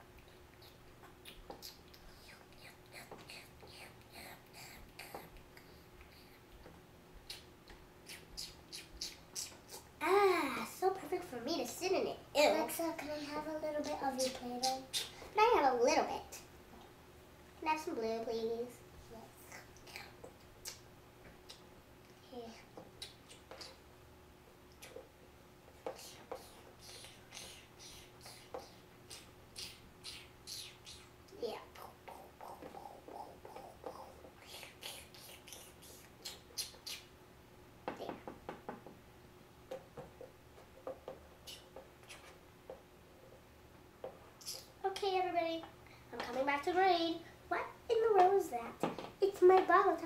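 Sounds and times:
soft hissing: 0.0 - 16.9, 25.8 - 37.1, 41.1 - 43.4, 44.2 - 50.0
child murmuring: 8.1 - 11.2, 12.4 - 15.7.

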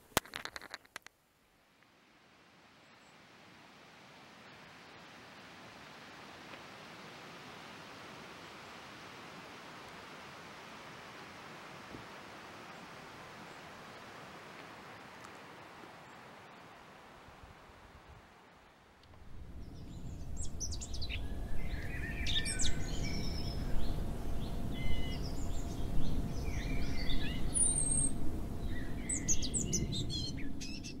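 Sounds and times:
steady low rumble: 19.1 - 31.0
birds chirping: 19.2 - 31.0.

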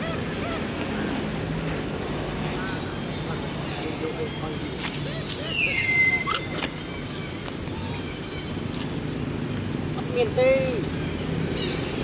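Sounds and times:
murmur of distant voices: 0.0 - 12.0.

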